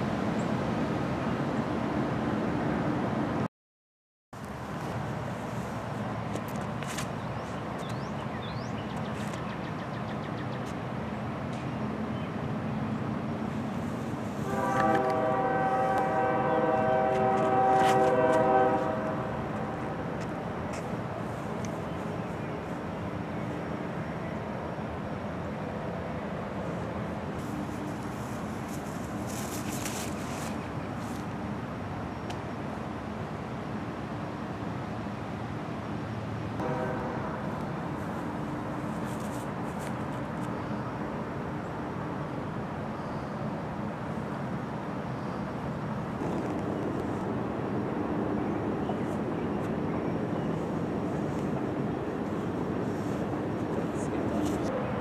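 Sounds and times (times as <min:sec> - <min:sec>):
train horn blasts: 0:14.4 - 0:20.0, 0:36.6 - 0:37.6.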